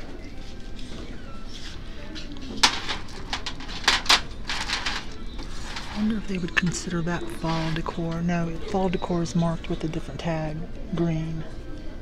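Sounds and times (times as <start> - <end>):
small objects clicking and knocking: 2.6 - 6.0.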